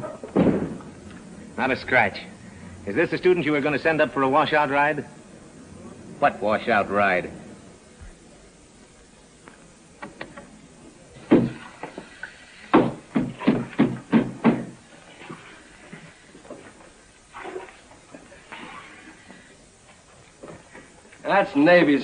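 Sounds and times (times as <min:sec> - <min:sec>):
faint scattered sounds: 0:00.0 - 0:22.0
sharp knocks: 0:11.2 - 0:11.7, 0:12.7 - 0:14.8.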